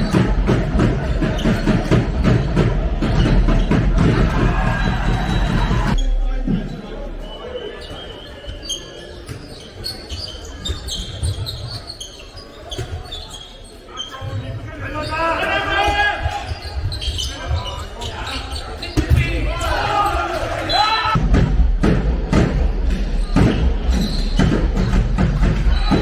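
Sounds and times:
people shouting: 0:04.0 - 0:06.0, 0:25.5 - 0:26.0
ball bouncing on hall floor: 0:21.1 - 0:26.0.

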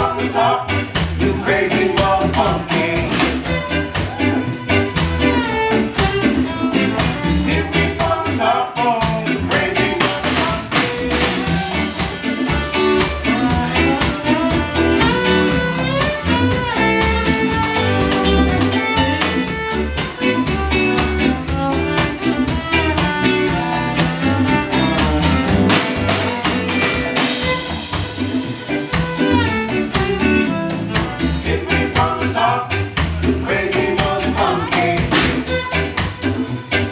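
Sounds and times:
live reggae band: 0:00.0 - 0:36.9
fiddle melody: 0:02.8 - 0:08.1, 0:09.7 - 0:31.5, 0:34.4 - 0:36.9.

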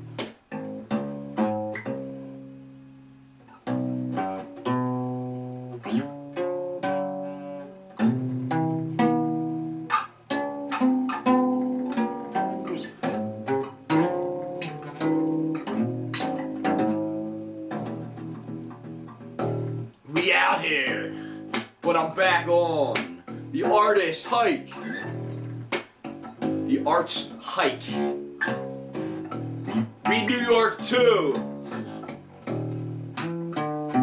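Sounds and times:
acoustic guitar plucked notes and chords: 0:00.0 - 0:34.0.

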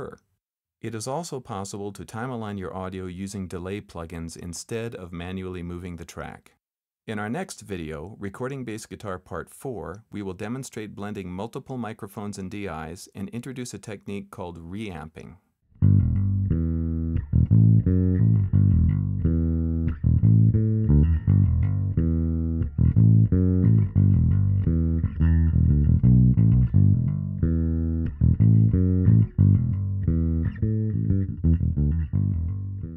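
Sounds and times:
electric bass guitar riff: 0:15.7 - 0:32.9.

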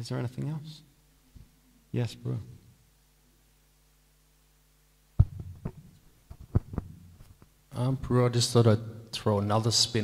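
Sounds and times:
microphone handling thumps: 0:05.2 - 0:07.5.

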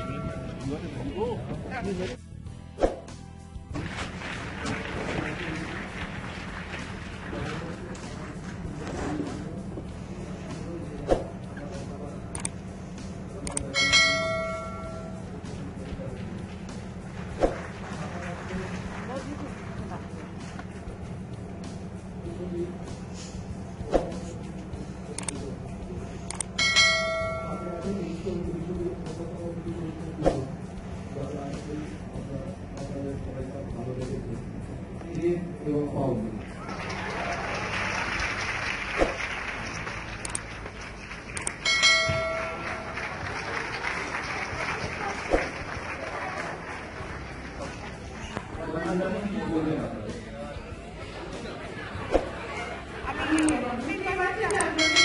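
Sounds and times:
crowd applause: 0:03.7 - 0:08.8, 0:15.7 - 0:20.8, 0:36.4 - 0:49.2
notification bell ding: 0:13.8 - 0:15.2, 0:26.6 - 0:27.9, 0:41.6 - 0:42.9, 0:54.8 - 0:55.0.

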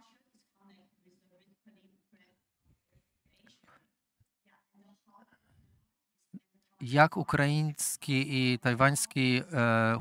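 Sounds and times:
faint voice: 0:06.8 - 0:10.0.

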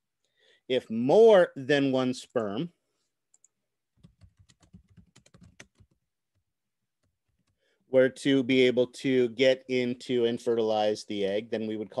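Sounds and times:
keyboard typing clicks: 0:03.3 - 0:06.0.

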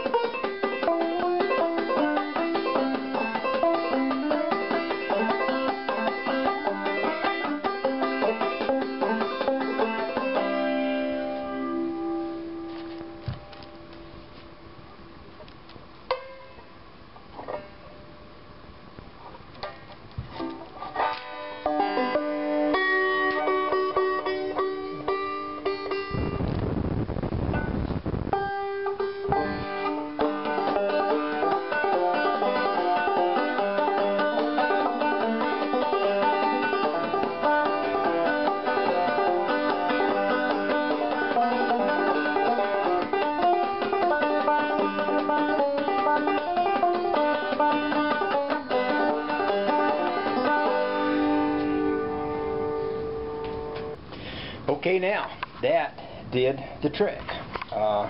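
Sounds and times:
banjo picking: 0:00.0 - 0:18.4, 0:19.2 - 0:26.7, 0:27.4 - 0:54.0.

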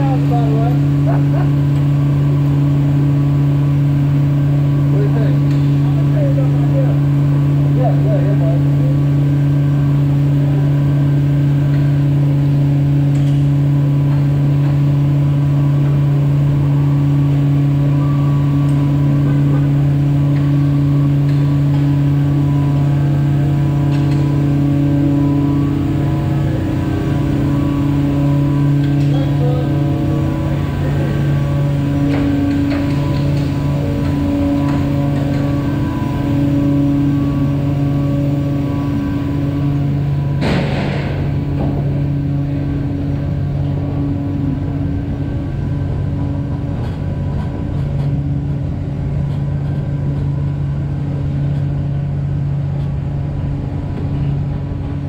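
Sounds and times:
truck engine droning: 0:00.0 - 0:55.0.

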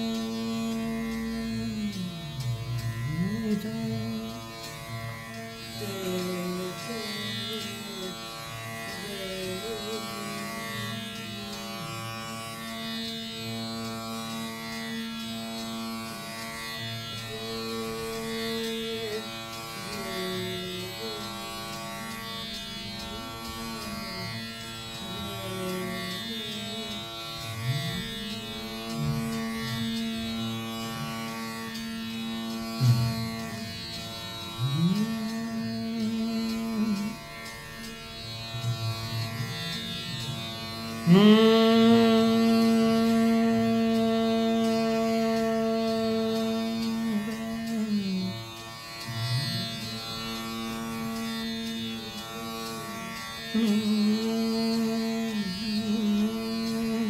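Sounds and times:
plucked veena notes gliding: 0:00.0 - 0:57.0.

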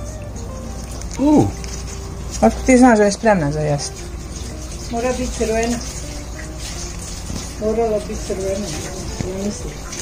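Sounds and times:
person speaking: 0:01.1 - 0:01.6.

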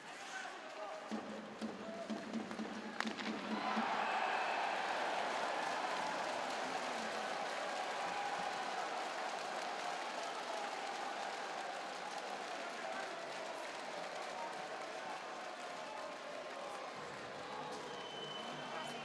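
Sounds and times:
crowd cheering and applauding: 0:02.1 - 0:19.0.

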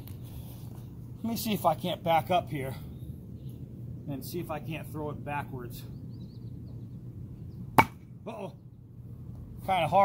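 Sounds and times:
knife striking wooden log: 0:07.8 - 0:08.0.

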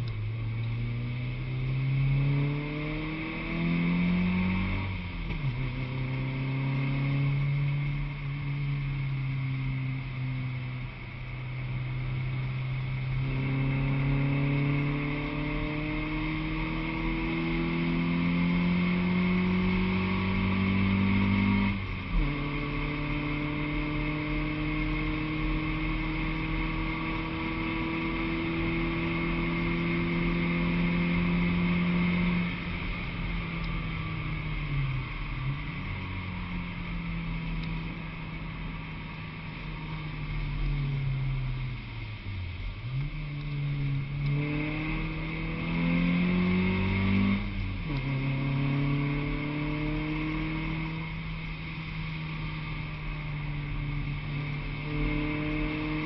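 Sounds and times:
car engine accelerating and shifting: 0:00.0 - 0:56.0
road and wind noise: 0:00.0 - 0:56.0.

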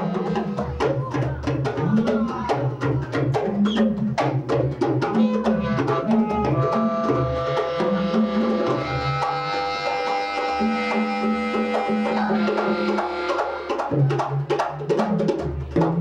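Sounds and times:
hand drums: 0:00.0 - 0:16.0
saxophone held notes: 0:05.2 - 0:13.7.

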